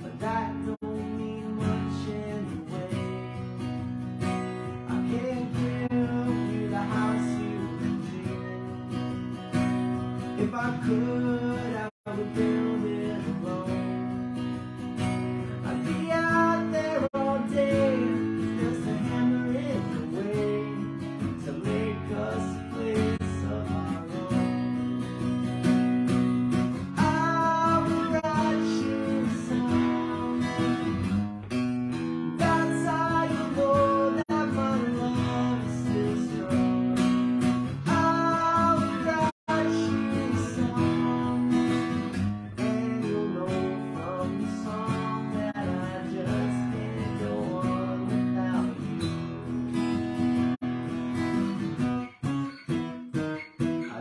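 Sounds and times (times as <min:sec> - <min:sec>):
man singing: 0:00.0 - 0:49.6, 0:53.7 - 0:54.0
acoustic guitar strumming: 0:00.0 - 0:54.0.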